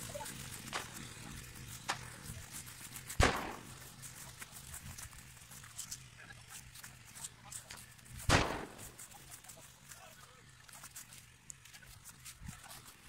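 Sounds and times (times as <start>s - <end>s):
rustling in grass: 0.0s - 13.0s.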